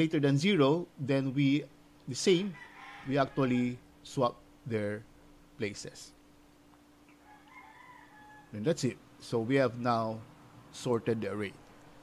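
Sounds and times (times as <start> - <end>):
steady low hum: 0.0 - 12.0
faint rooster crowing: 2.4 - 3.9, 7.0 - 8.8.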